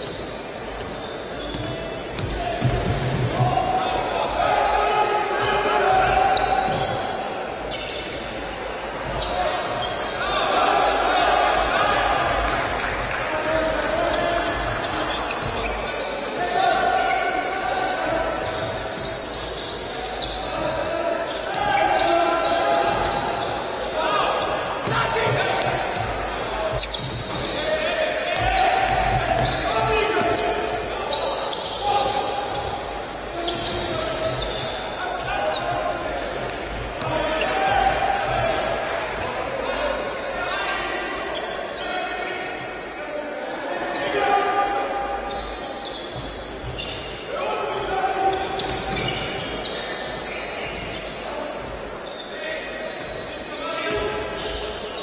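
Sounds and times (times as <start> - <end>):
voices calling out echoing: 0.0 - 55.0
basketball bouncing on wooden court: 28.4 - 30.6.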